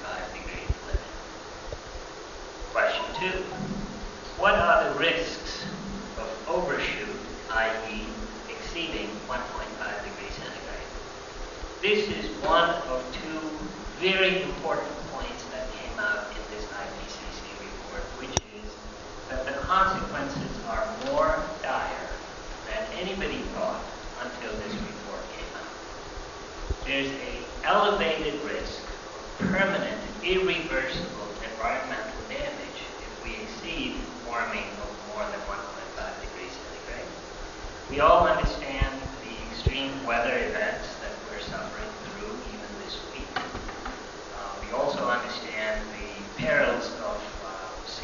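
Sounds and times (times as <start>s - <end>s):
person talking: 0.0s - 1.2s, 2.7s - 11.0s, 11.8s - 25.8s, 26.8s - 37.2s, 37.9s - 48.0s
steady buzzing hum: 0.0s - 48.0s.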